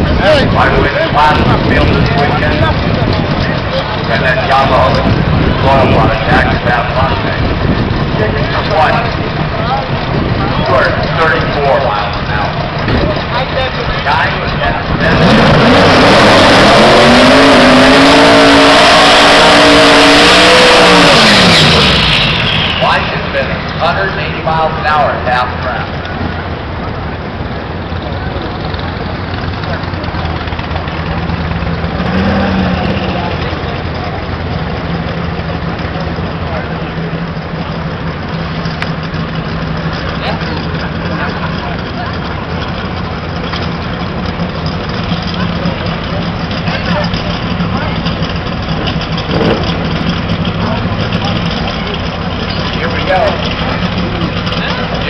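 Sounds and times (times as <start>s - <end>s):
car engine idling: 0.0s - 55.0s.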